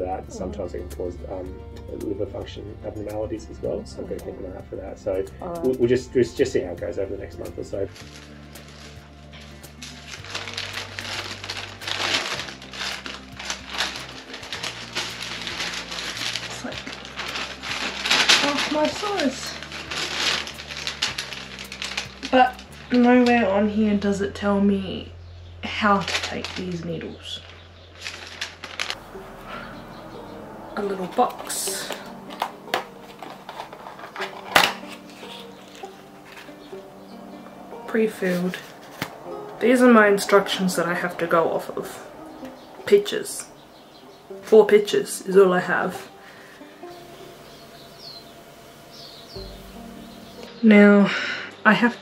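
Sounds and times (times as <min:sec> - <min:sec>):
background music with low notes: 0:00.0 - 0:52.0
paper rustling and crinkling: 0:07.8 - 0:23.3, 0:26.0 - 0:36.9, 0:37.8 - 0:43.1.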